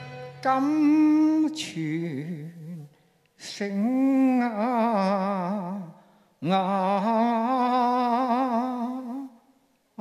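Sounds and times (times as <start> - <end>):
man singing with vibrato: 0.0 - 10.0.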